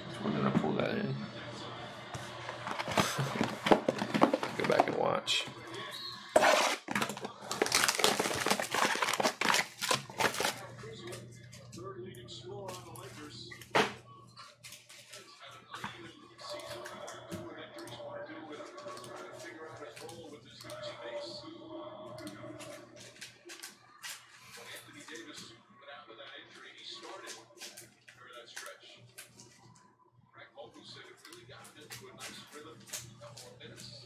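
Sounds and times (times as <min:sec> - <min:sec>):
muffled talking: 0:00.0 - 0:06.4, 0:10.2 - 0:34.0
cards clicking and rustling: 0:02.5 - 0:05.1, 0:06.4 - 0:11.7, 0:14.5 - 0:15.9, 0:22.2 - 0:25.4, 0:27.0 - 0:29.5.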